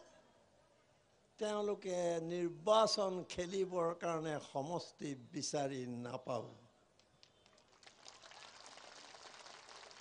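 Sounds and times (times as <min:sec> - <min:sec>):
faint audience applause: 0:07.2 - 0:10.0.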